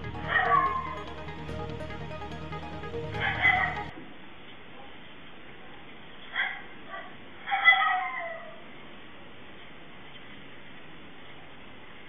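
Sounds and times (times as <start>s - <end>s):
background music: 0.0s - 4.0s.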